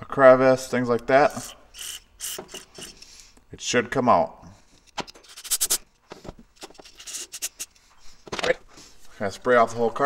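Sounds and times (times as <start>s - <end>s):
air hiss bursts: 5.2s - 5.8s, 7.0s - 7.7s.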